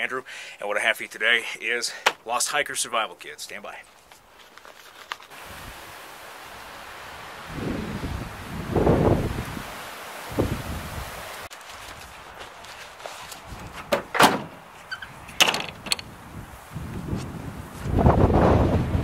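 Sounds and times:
truck tailgate slamming: 0:13.8 - 0:14.6, 0:15.4 - 0:16.0.

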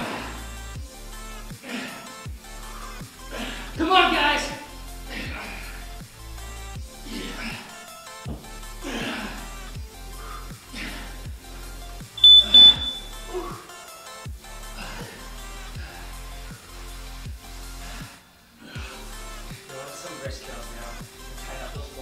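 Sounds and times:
background music with steady beat: 0:00.0 - 0:22.0
high electronic beeps: 0:12.2 - 0:13.1.

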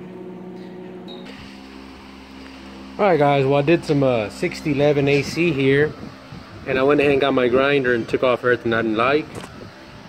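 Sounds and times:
electrical-mechanical hum: 0:00.0 - 0:10.0
fan-like hiss: 0:01.3 - 0:10.0.

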